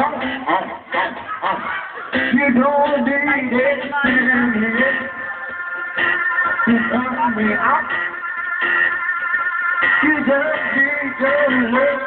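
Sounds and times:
instrumental music with guitar: 0:00.0 - 0:12.0.

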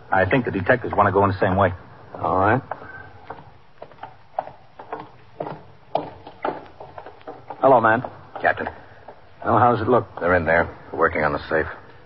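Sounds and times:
footsteps walking: 0:00.3 - 0:12.0.

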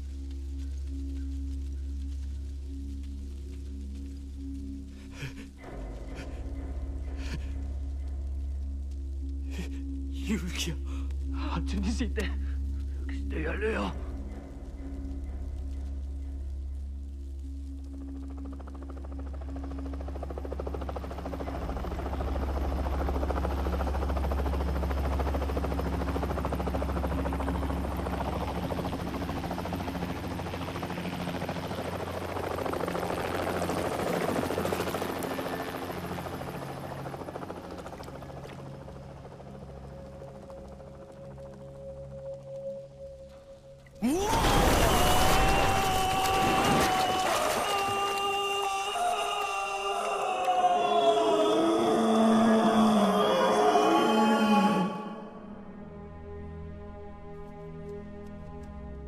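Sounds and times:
low music drone: 0:00.0 - 0:59.0
helicopter rotor noise: 0:17.9 - 0:42.2.

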